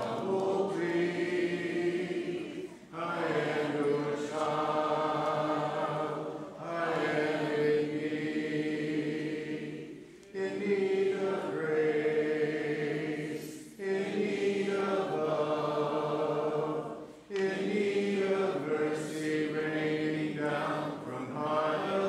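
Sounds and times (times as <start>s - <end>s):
congregation singing a hymn: 0.0s - 22.0s.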